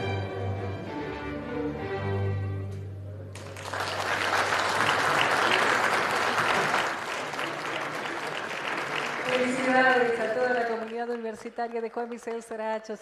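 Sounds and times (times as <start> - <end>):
audience applauding: 3.3 - 12.4.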